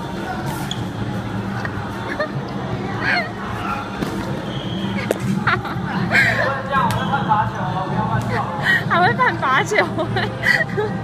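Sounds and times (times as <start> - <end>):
scattered voices: 0.0 - 11.0.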